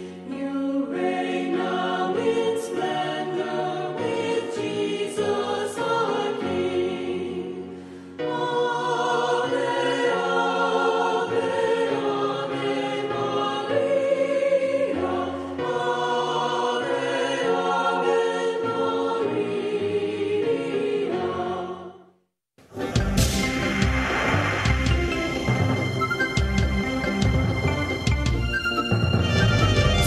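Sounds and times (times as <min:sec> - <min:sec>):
choir singing slow chords: 0:00.0 - 0:22.2.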